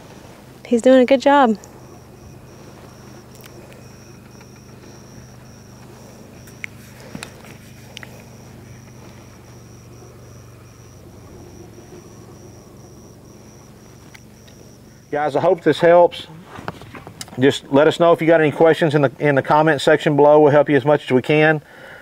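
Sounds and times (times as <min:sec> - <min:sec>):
faint pulsing high tone: 0:00.0 - 0:16.5
distant engine humming: 0:00.0 - 0:20.2
faint clicks: 0:01.6 - 0:09.6, 0:13.9 - 0:14.6.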